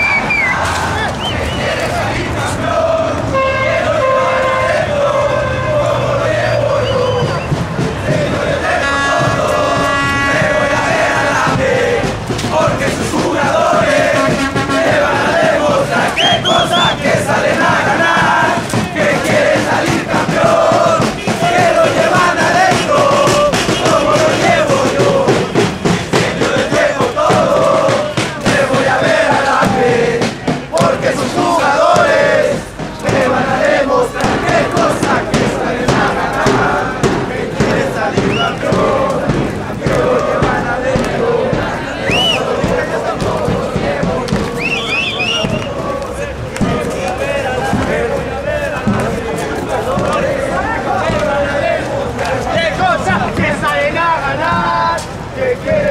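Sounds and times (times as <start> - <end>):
crowd chanting and singing: 0.0 - 55.9.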